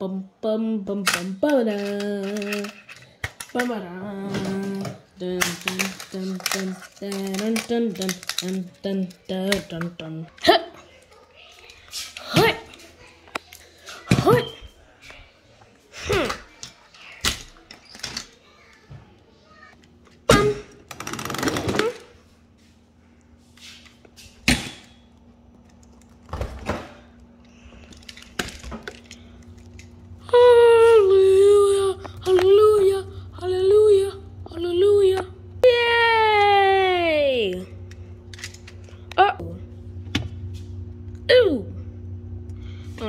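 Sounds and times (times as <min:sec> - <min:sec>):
steady low hum: 0:00.0 - 0:43.0
plastic toy trains clicking: 0:01.1 - 0:03.7, 0:04.7 - 0:10.1.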